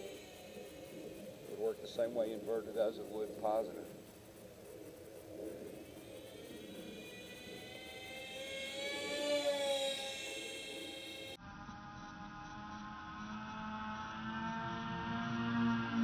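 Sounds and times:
model plane propellers whining: 0:00.0 - 0:11.4.

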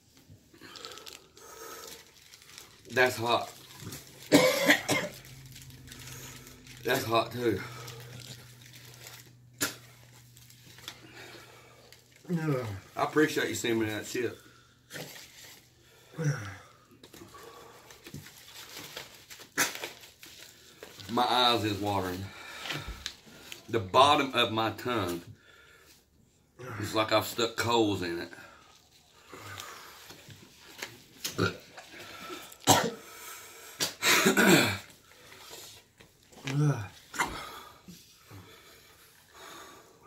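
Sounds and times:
man clearing his throat: 0:04.3 - 0:05.2, 0:32.7 - 0:33.0, 0:33.8 - 0:34.9
man coughing and gagging: 0:04.3 - 0:05.2, 0:32.6 - 0:33.0, 0:33.8 - 0:34.9, 0:36.7 - 0:37.6.

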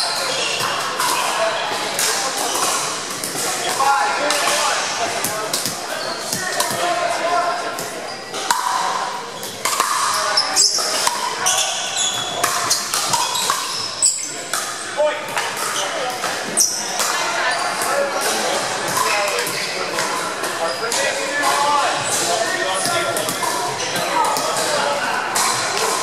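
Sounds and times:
paddles hitting plastic ball: 0:00.6 - 0:06.9, 0:07.8 - 0:11.4, 0:12.2 - 0:13.8, 0:14.5 - 0:26.0
ball hits from neighbouring courts: 0:07.8 - 0:26.0.

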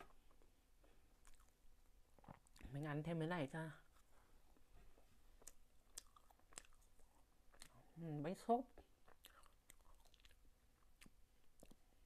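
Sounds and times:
chewing soft cake: 0:00.0 - 0:02.8, 0:03.8 - 0:12.0
wet mouth clicks: 0:09.0 - 0:11.9.

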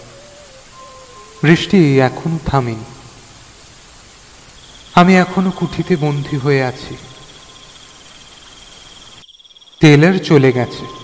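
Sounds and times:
crickets chirping: 0:00.0 - 0:11.0
soft hiss: 0:00.0 - 0:11.0.

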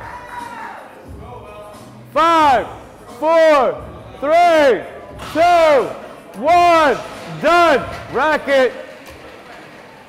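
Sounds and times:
man shouting: 0:02.1 - 0:08.5.

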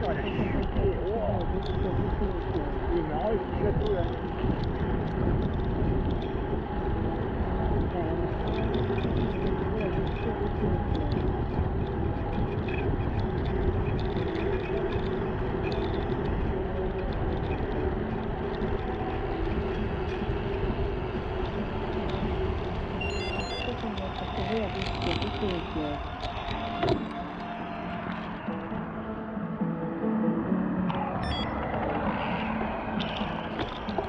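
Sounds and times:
wind rumble on microphone: 0:00.0 - 0:29.4, 0:31.0 - 0:34.0.

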